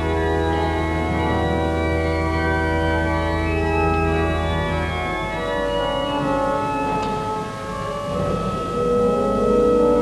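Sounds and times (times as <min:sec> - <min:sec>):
pipe organ sustained chords: 0:00.0 - 0:10.0.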